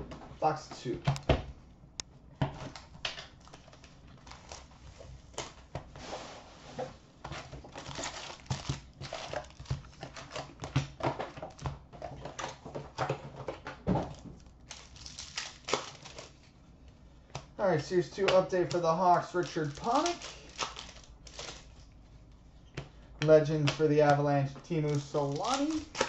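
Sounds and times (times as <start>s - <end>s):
plastic shrink wrap tearing and crinkling: 2.6s - 5.7s, 7.5s - 11.7s, 14.0s - 16.6s, 17.9s - 21.9s, 23.4s - 26.0s
foil packs handled: 2.6s - 12.7s, 13.4s - 16.5s, 17.7s - 21.9s, 23.4s - 26.0s.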